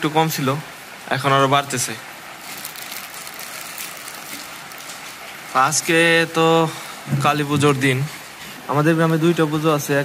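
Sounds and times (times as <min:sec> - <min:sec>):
heavy rain on tin roofs: 0:00.0 - 0:10.0.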